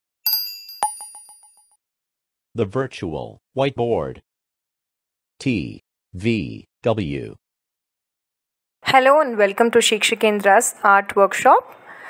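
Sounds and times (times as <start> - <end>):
electronic chime dings: 0.3 - 1.7.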